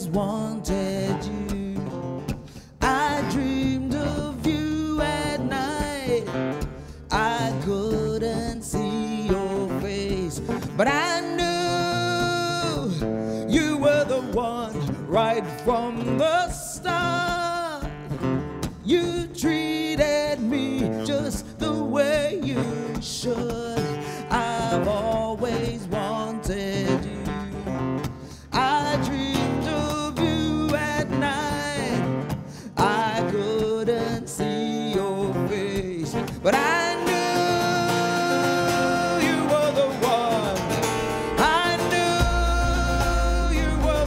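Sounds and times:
woman singing: 0:00.0 - 0:17.9, 0:18.7 - 0:27.9, 0:28.5 - 0:44.0
acoustic guitar: 0:00.0 - 0:44.0.

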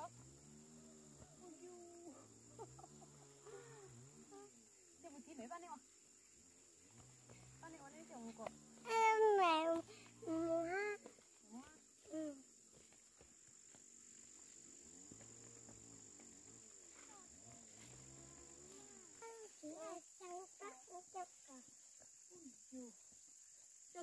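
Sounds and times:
child speaking: 0:08.1 - 0:12.4, 0:18.8 - 0:22.9.

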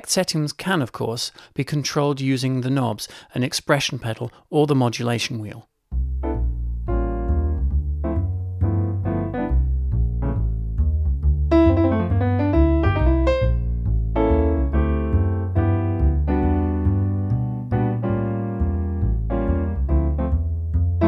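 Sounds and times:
digital piano playing: 0:06.2 - 0:21.0.

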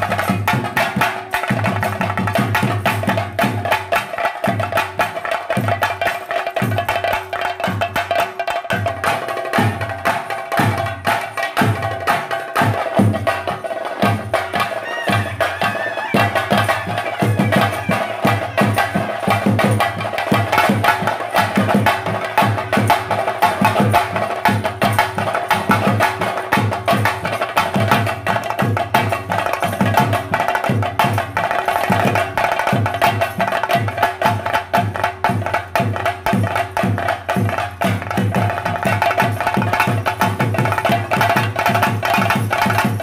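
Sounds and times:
fast drumming: 0:00.0 - 0:43.0.

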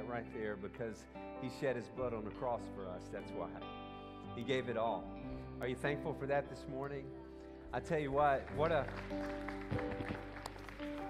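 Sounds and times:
electric guitar: 0:00.0 - 0:11.0
soft worship band music: 0:00.0 - 0:11.0.

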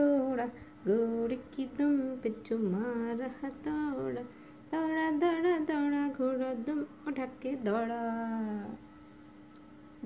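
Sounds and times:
woman singing long note: 0:00.0 - 0:09.0
faint steady hum: 0:00.0 - 0:10.0.

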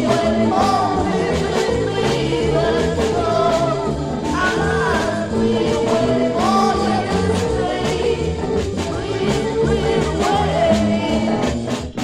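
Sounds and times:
beat band playing: 0:00.0 - 0:12.0
voices singing: 0:00.0 - 0:12.0.

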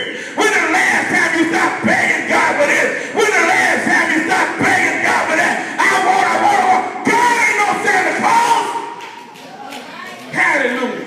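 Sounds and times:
man praying into a microphone: 0:00.0 - 0:09.0.

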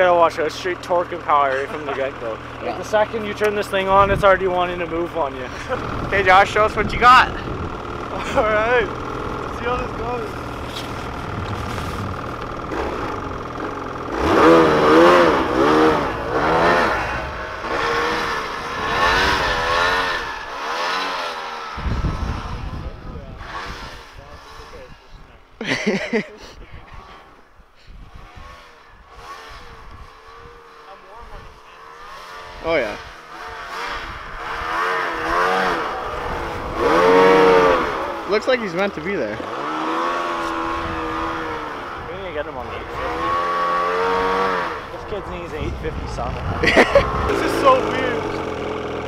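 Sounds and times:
snowmobile engine revving: 0:00.0 - 0:49.0.

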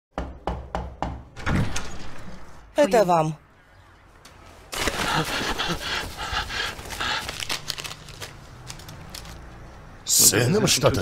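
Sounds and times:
knocks on a door: 0:00.1 - 0:01.3.

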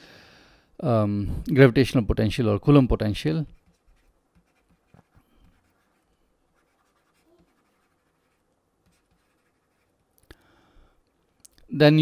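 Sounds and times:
pen writing on a tablet: 0:03.5 - 0:10.1.

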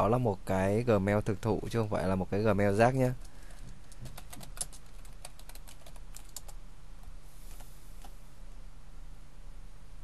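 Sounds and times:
keyboard typing: 0:03.2 - 0:06.6.

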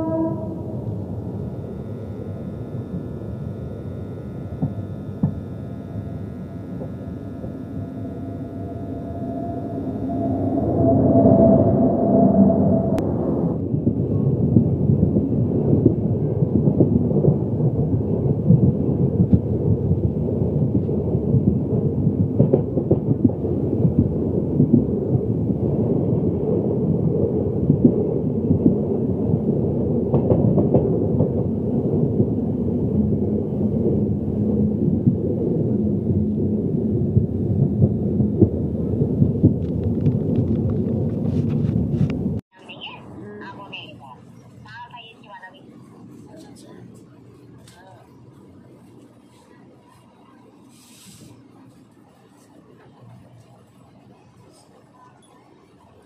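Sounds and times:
passenger train rumble: 0:00.0 - 0:56.0.

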